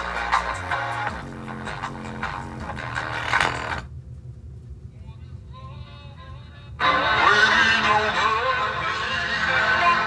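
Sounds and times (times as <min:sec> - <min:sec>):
bass-heavy electronic music: 0:00.0 - 0:03.8.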